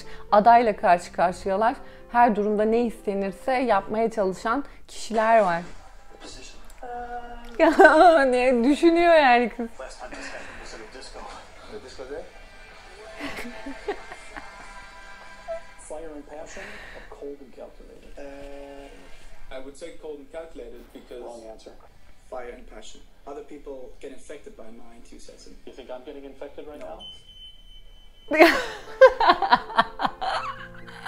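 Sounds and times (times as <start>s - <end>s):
background music: 0.0s - 20.5s, 28.3s - 31.0s
man speaking: 19.5s - 27.0s.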